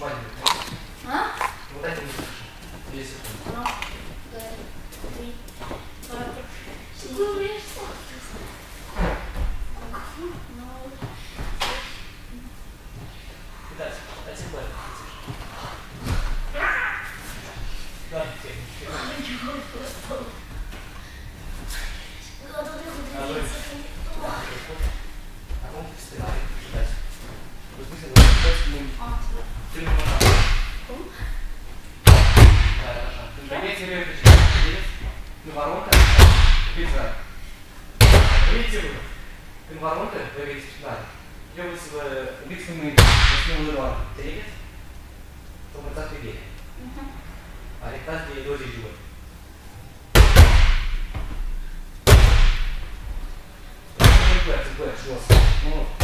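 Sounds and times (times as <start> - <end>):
heavy thuds echoing in a hall: 28.0 - 33.2, 34.2 - 35.2, 35.9 - 37.2, 38.0 - 39.0, 43.0 - 44.0, 50.1 - 53.1, 54.0 - 56.0.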